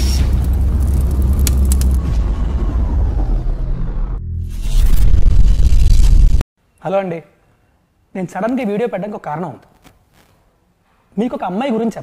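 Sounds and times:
deep rumble: 0.0s - 6.4s.

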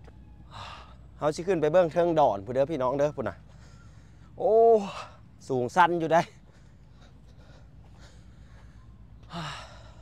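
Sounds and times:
steady low hum: 0.0s - 10.0s
man gasping: 9.3s - 10.0s.

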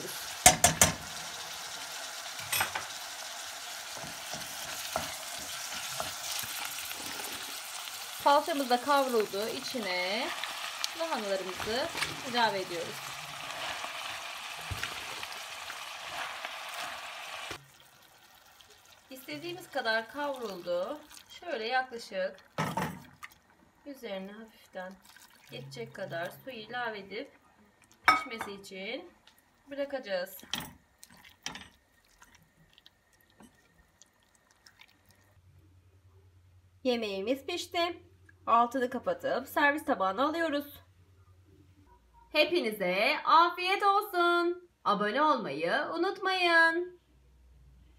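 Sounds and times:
cabbage sizzling in a pot: 0.0s - 27.3s.

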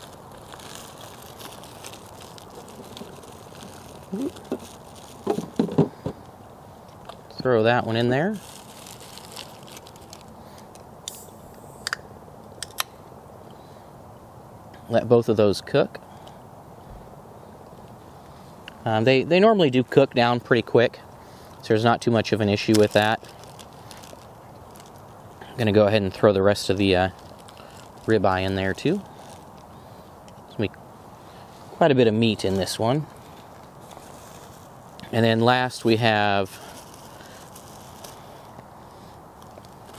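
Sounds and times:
plastic bag crinkling: 0.0s - 6.3s, 7.8s - 10.8s, 22.3s - 29.8s, 32.2s - 38.7s, 39.3s - 39.9s.

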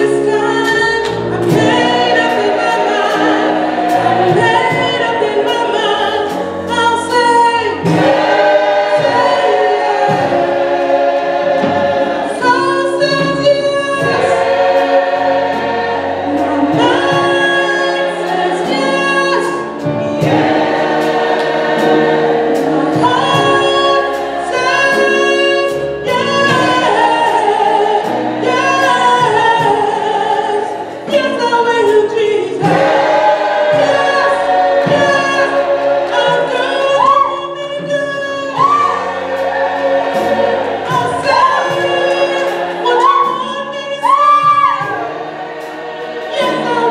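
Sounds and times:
gospel choir singing: 0.0s - 46.9s.

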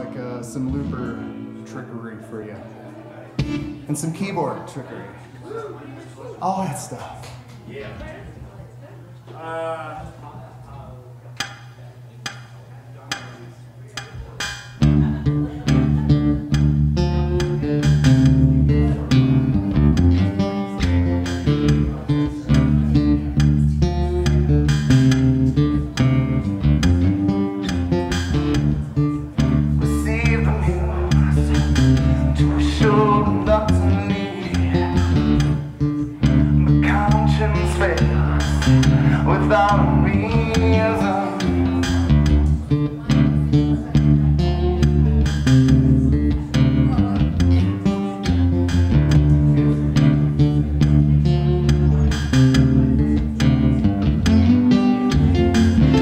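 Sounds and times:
deep bass line: 0.0s - 1.6s, 3.4s - 4.0s, 14.4s - 56.0s
rock blues guitar: 0.0s - 1.7s, 2.6s - 3.9s, 14.4s - 56.0s
strummed guitar groove: 0.0s - 4.4s, 11.4s - 56.0s.

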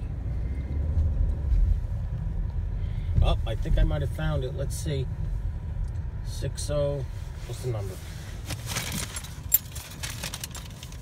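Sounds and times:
car rumble inside cabin: 0.0s - 11.0s.

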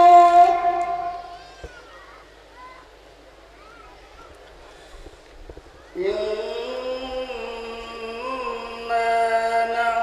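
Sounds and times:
man singing a long note: 0.0s - 1.4s, 6.0s - 10.0s.

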